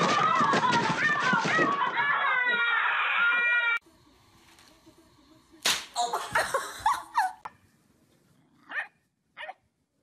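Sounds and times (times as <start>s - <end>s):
children screaming: 0.0s - 3.8s.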